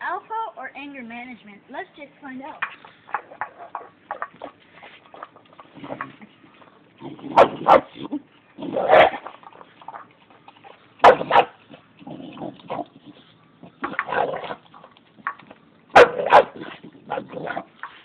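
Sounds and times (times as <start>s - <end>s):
dog barking gruffly: 7.2s - 8.1s, 8.7s - 9.3s, 11.0s - 11.6s, 15.9s - 17.7s.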